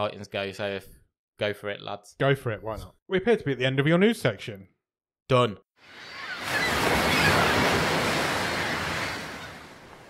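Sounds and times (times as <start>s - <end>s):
wave washing: 5.8s - 10.0s.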